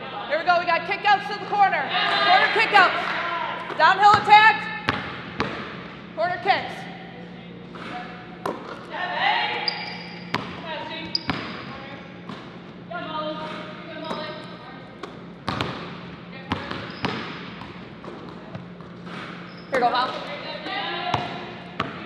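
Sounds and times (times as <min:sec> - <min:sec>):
voices calling out: 0:01.2 - 0:04.8
basketballs bouncing on hardwood: 0:03.7 - 0:05.8, 0:10.3 - 0:12.6, 0:13.4 - 0:22.0.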